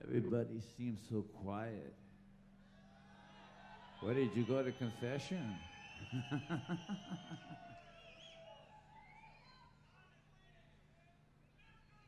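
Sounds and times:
man laughing into microphone: 0:06.1 - 0:07.7.

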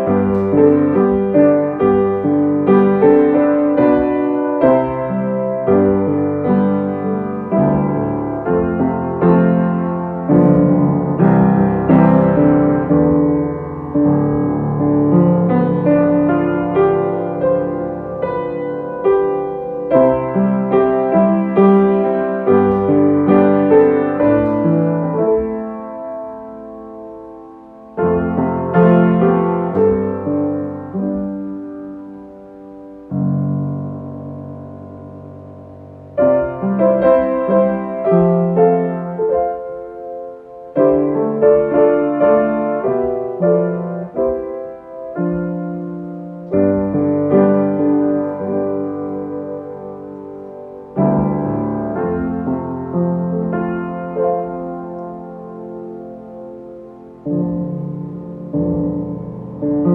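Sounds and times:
solo piano: 0:00.0 - 0:59.9.

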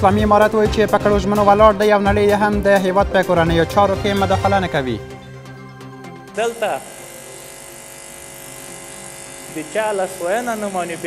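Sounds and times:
microphone electrical buzz with hiss: 0:06.3 - 0:11.0.

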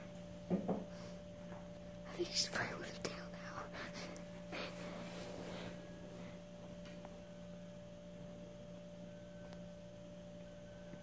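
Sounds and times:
steady low hum: 0:00.0 - 0:11.0
person whispering: 0:02.1 - 0:04.0.

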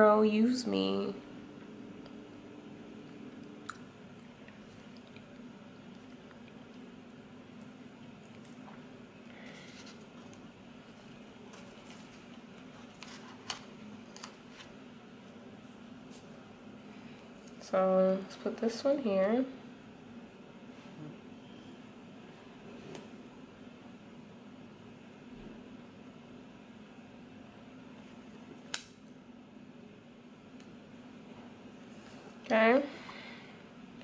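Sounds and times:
low steady room hum: 0:00.0 - 0:34.0.

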